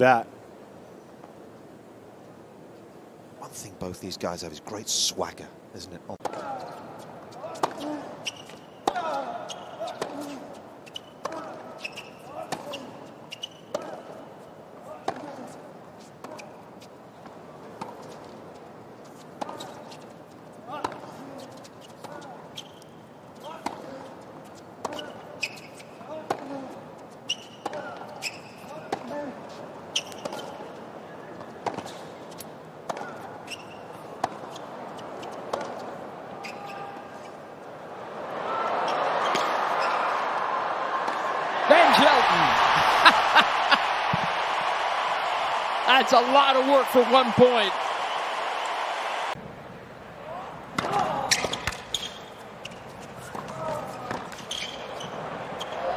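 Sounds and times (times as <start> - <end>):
racket hitting tennis ball: 7.4 - 14.0, 26.1 - 26.6, 34.2 - 34.6, 35.2 - 36.0
players grunting: 41.6 - 44.0.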